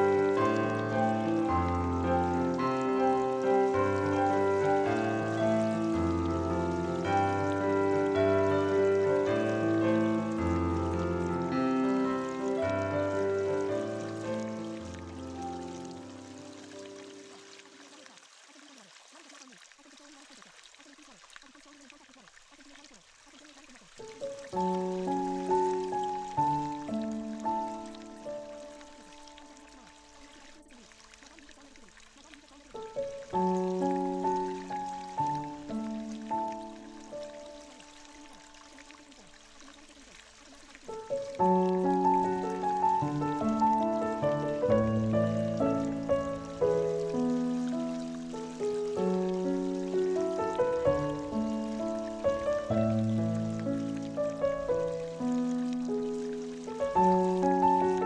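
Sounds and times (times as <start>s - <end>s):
solo piano music: 0.0s - 17.9s, 23.9s - 40.0s, 40.8s - 58.0s
trickling water: 0.0s - 58.0s.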